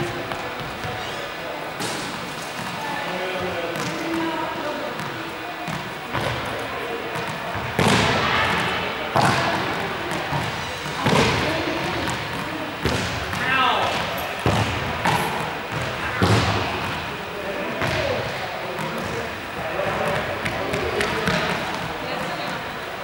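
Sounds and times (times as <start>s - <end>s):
voices talking and calling out: 0.0s - 23.0s.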